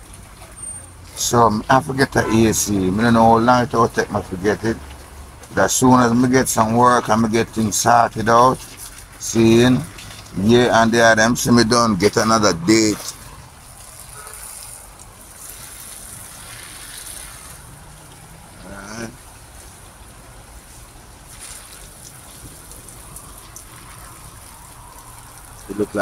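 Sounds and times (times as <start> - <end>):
faint distant sounds: 0.0 - 26.0
low even outdoor hiss: 1.1 - 26.0.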